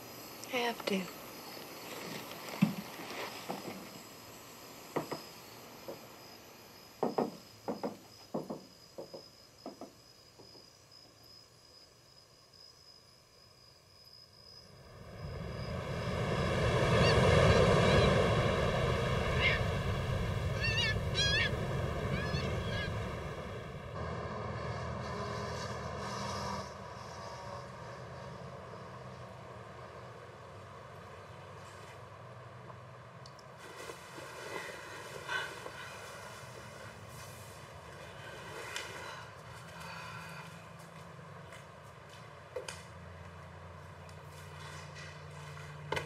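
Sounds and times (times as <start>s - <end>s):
ocean surf washing: 14.8s - 23.9s
bird calls: 16.9s - 18.2s, 19.3s - 23.6s.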